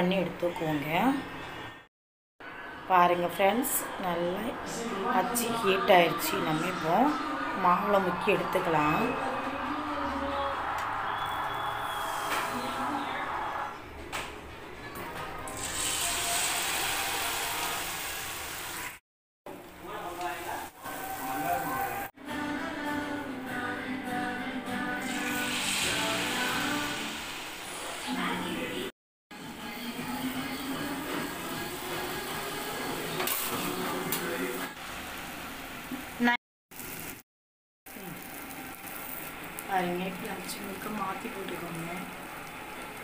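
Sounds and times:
batter sizzling in hot oil: 15.5s - 19.0s, 25.0s - 27.8s, 36.7s - 37.2s, 37.9s - 43.0s.

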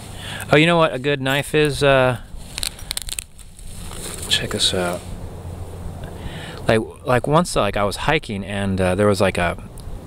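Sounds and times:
crinkly rustling: 1.3s - 5.1s.

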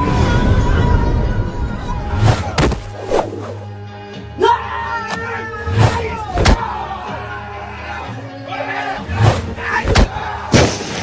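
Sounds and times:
men shouting and yelling: 3.6s - 11.0s
sharp smack of blows: 5.8s - 6.6s, 9.2s - 11.0s.

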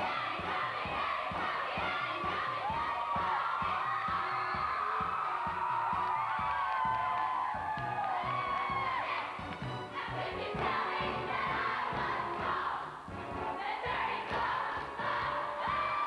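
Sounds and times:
women singing and shouting: 0.0s - 5.2s
backing music with steady beat: 0.0s - 16.0s.

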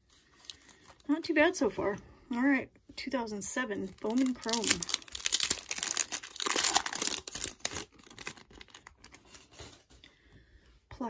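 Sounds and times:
foil wrapper tearing and crinkling: 3.8s - 9.7s.

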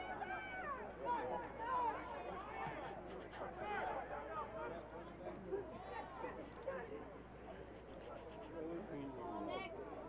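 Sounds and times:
distant shouts and chatter: 0.0s - 10.0s
low background murmur: 0.0s - 10.0s.

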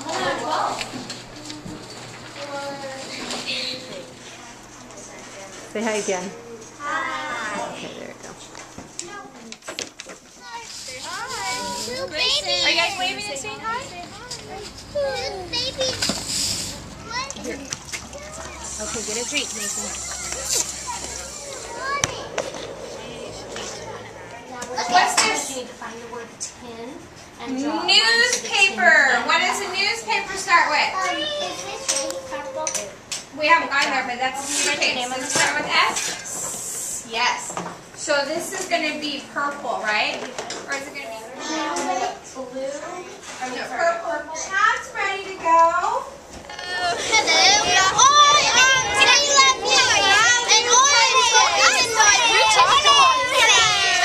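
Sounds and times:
faint children's voices: 8.8s - 28.5s, 30.1s - 33.2s, 46.1s - 54.0s.

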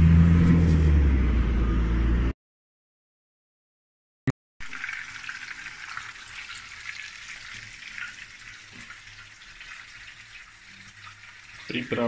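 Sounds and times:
cutlet sizzling in oil: 4.6s - 12.0s.

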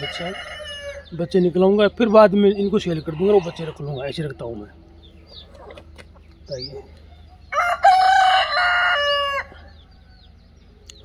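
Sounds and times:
rooster crowing: 0.0s - 1.1s, 3.0s - 4.0s, 7.4s - 10.3s.

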